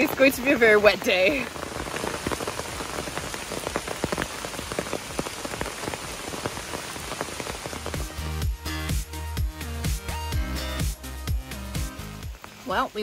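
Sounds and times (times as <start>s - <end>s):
heavy rain on umbrella: 0.0s - 13.0s.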